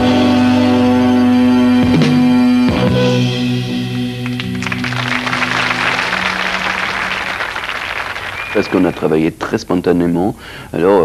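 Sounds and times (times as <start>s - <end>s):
rock band low sustained note: 0.0s - 6.9s
audience applauding: 4.0s - 9.2s.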